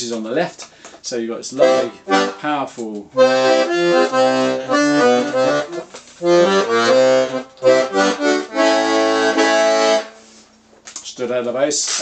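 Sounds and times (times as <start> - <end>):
accordion bass notes and chords: 1.5 - 10.4.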